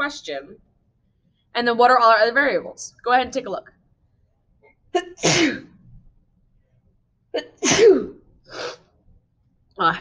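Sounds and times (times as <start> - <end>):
woman sneezing: 5.0 - 5.7, 7.4 - 8.8.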